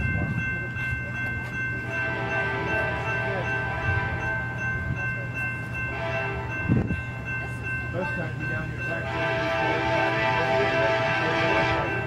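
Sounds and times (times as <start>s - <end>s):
train rumbling: 0.0s - 12.0s.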